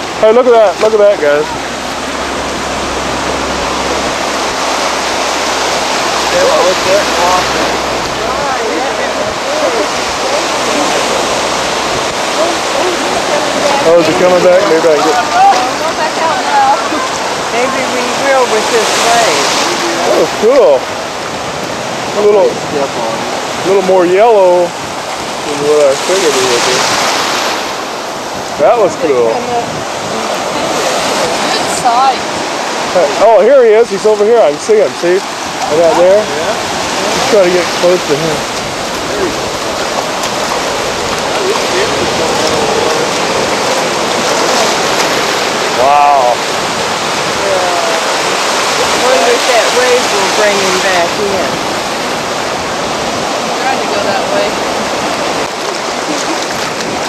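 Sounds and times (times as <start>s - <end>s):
faint voices: 0.0s - 21.0s, 28.5s - 57.0s
ocean surf washing onto beach: 0.0s - 57.0s.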